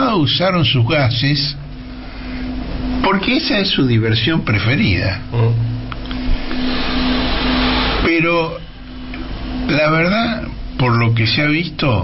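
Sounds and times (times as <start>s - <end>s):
speech: 0.0s - 1.6s, 3.0s - 5.6s, 8.0s - 8.6s, 9.7s - 12.0s
low steady hum: 0.0s - 12.0s
steady rushing hiss: 0.1s - 12.0s.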